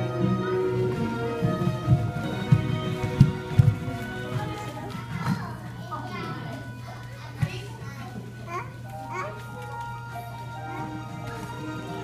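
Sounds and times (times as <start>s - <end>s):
quiet background music: 0.0s - 12.0s
children chattering and calling out: 3.9s - 12.0s.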